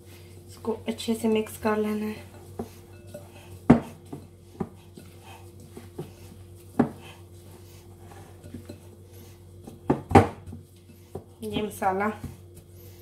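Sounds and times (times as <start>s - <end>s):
hands kneading mixture: 0.0s - 13.0s.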